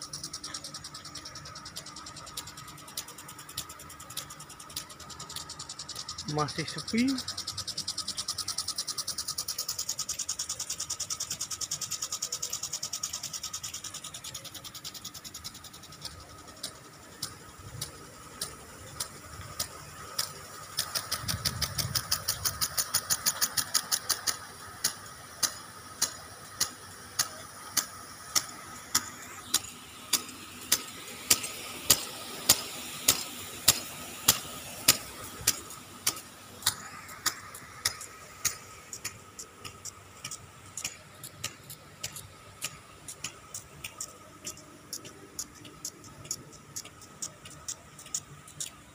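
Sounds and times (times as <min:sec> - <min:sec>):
hiss of spray: 0:00.0 - 0:48.8
impact sprinklers ticking: 0:00.0 - 0:48.9.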